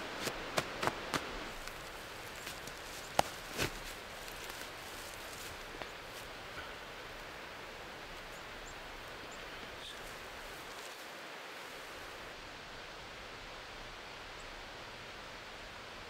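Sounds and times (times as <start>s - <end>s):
rustling of moss by hand: 0.0s - 12.2s
steady outdoor hiss: 0.0s - 16.0s
small crackles: 0.1s - 7.3s, 8.1s - 11.1s.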